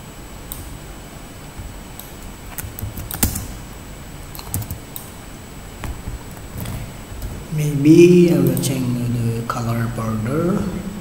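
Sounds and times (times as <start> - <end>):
keyboard typing clicks: 2.0 - 3.6, 4.3 - 5.1.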